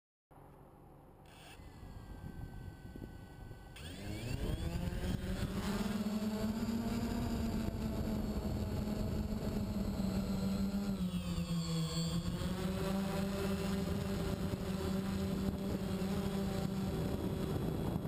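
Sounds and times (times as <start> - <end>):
drone propellers buzzing: 1.3 - 18.0.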